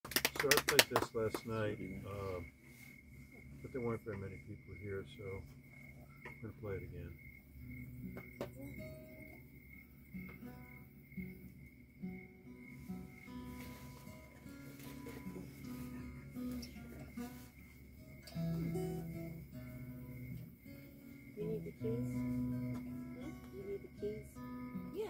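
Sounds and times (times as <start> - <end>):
acoustic guitars picking: 0.1 - 25.0.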